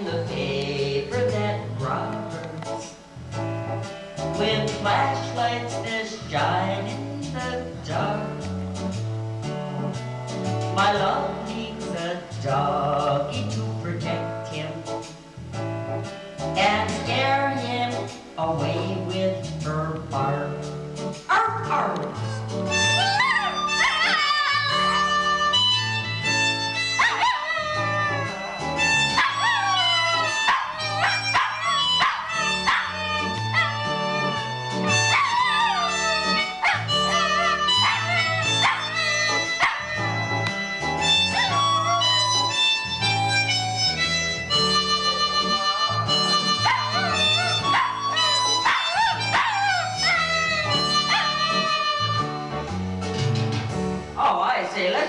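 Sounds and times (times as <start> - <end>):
electronic keyboard music: 21.5 - 53.9
dog howling and yipping: 22.8 - 25.3, 26.7 - 40.4, 41.0 - 42.6, 45.0 - 52.1.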